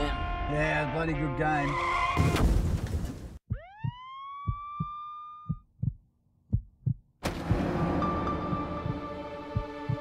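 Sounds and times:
heartbeat thumps: 3.4s - 10.0s.

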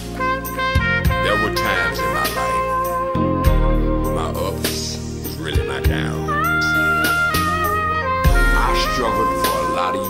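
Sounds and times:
live band chords: 0.0s - 9.9s.

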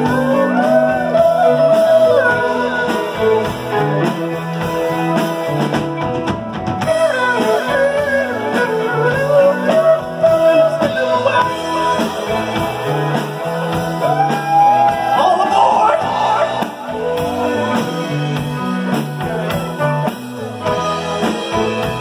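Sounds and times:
drums: 0.0s - 22.0s
electric guitar: 0.0s - 22.0s
keyboard: 0.0s - 22.0s
lead melody line: 0.0s - 22.0s.

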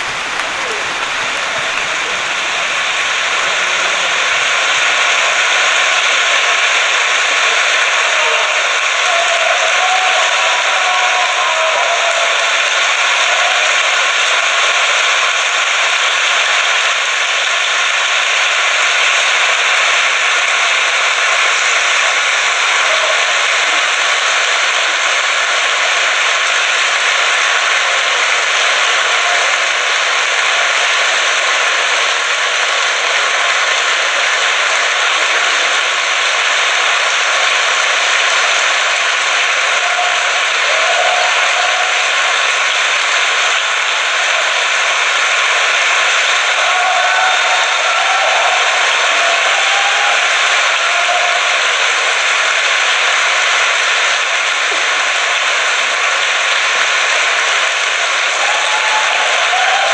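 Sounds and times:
large audience applauding: 0.0s - 59.9s.

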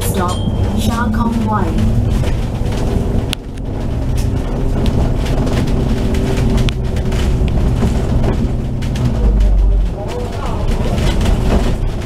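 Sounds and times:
bodywork rattles: 0.0s - 12.0s
bus engine running: 0.0s - 12.0s.

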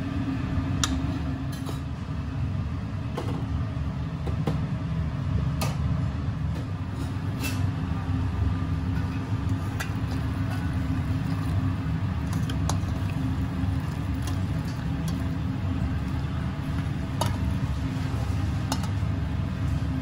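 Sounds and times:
kitchen equipment rumble: 6.9s - 20.0s
steel bowls and utensils clinking: 8.9s - 19.0s.

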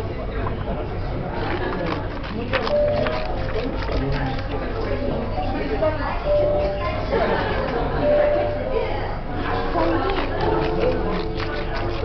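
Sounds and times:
room chatter: 0.0s - 12.0s
paper rustling: 1.4s - 4.6s.

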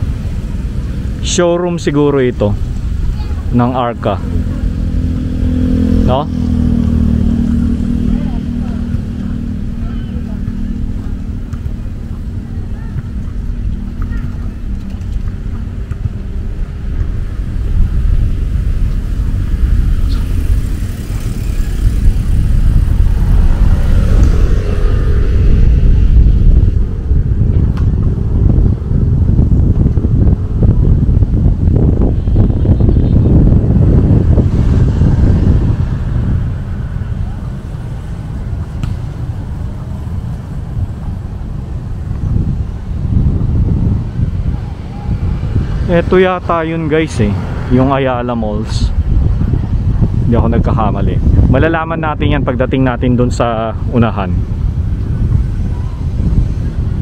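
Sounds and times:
road traffic passing: 0.0s - 57.0s
wind rumble on microphone: 0.0s - 57.0s.

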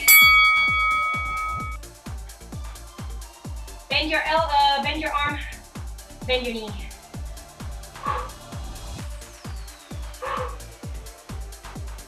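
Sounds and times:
bright bell-like chime: 0.0s - 1.8s
electronic dance music: 0.0s - 12.0s.

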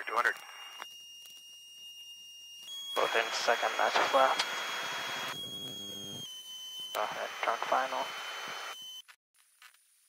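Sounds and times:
high electrical whine: 0.4s - 9.0s
buzzing hum: 2.7s - 9.0s
radio transmission click: 3.0s - 5.4s
radio hiss: 3.0s - 6.2s, 7.0s - 8.8s.

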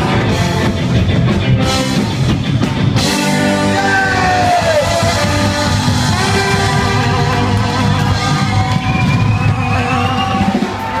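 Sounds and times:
drums: 0.0s - 11.0s
ska band playing live: 0.0s - 11.0s
horns holding long notes: 3.1s - 11.0s.

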